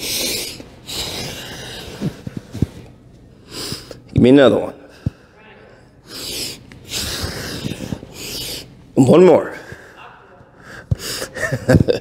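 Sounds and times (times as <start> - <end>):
man breathing hard: 0.0 - 2.8, 3.4 - 4.1, 4.8 - 8.8, 9.5 - 11.6.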